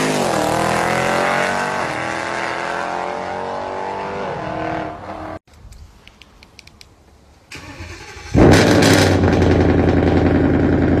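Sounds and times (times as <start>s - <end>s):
car engine cranking: 7.5s - 11.0s
car engine revving then idling: 7.7s - 11.0s.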